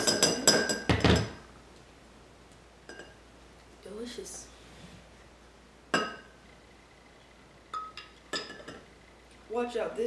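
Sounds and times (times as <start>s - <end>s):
kitchenware clinking a glass: 0.0s - 1.4s, 2.9s - 3.2s, 5.9s - 6.3s, 7.7s - 8.9s.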